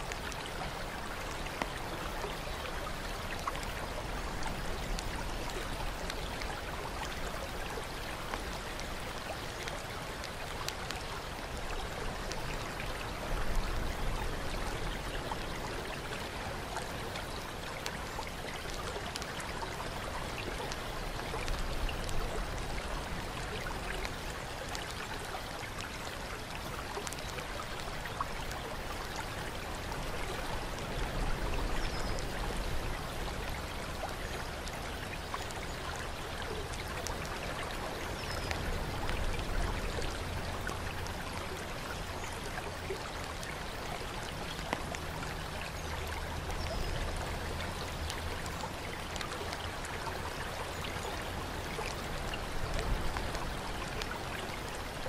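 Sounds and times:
faint water drips: 0.0s - 55.0s
running and trickling water: 0.0s - 55.0s.

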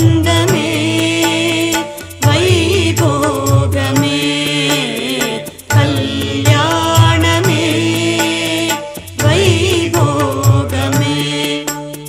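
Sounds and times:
low drum beat: 0.0s - 12.0s
wavering melodic line: 4.9s - 8.6s.

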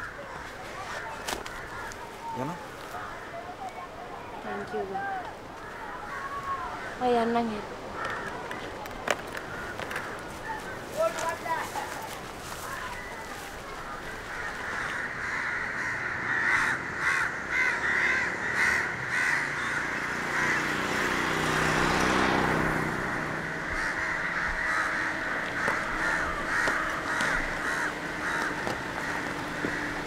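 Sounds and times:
crows cawing: 0.0s - 3.8s, 4.4s - 30.0s
motor vehicle passing: 13.5s - 30.0s.

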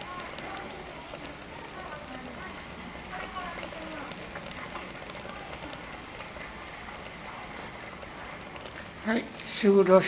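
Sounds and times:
faint indistinct voices: 0.0s - 10.0s
indoor background noise: 0.0s - 10.0s.

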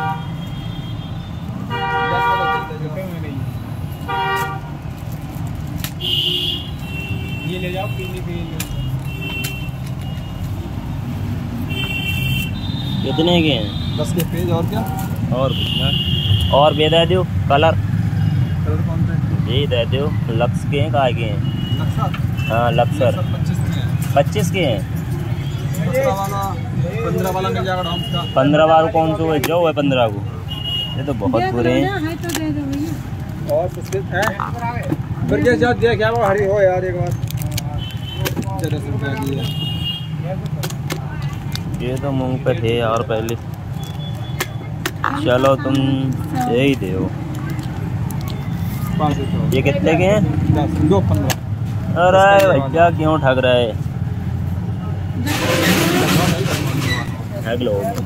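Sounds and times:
vehicle horn toots: 0.0s - 2.8s, 4.0s - 4.7s, 6.0s - 10.3s
plastic packets crinkling: 4.7s - 6.0s, 36.0s - 39.5s, 40.4s - 48.7s
rumble of passing engines: 44.6s - 58.0s.

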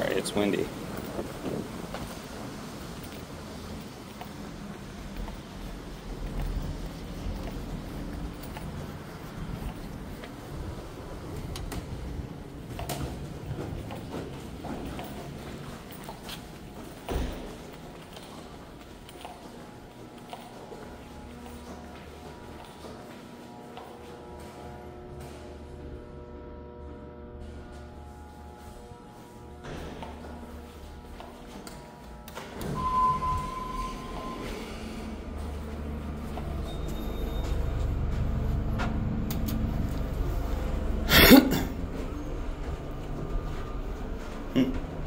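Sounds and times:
faint music: 0.0s - 45.0s
elevator rumble: 32.5s - 45.0s
short beep: 32.7s - 35.1s.

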